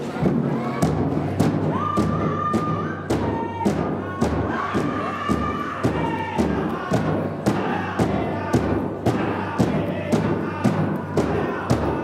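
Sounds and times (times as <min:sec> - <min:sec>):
big drum beating: 0:00.0 - 0:12.0.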